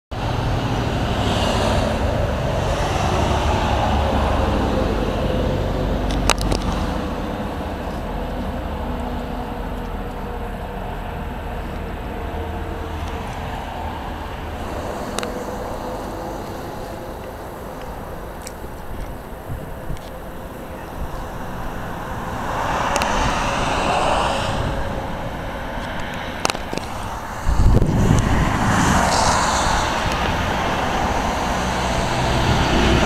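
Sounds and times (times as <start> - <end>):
road traffic passing: 0.1 - 33.0.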